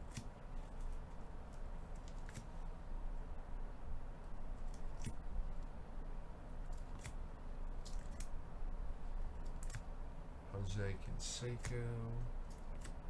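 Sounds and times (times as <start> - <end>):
low background rumble: 0.0 - 13.0.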